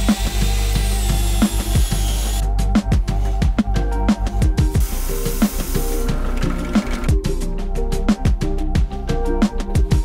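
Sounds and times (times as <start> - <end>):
sanding drum grinding wood: 0.0 - 2.4
electronic music with beat: 0.0 - 10.0.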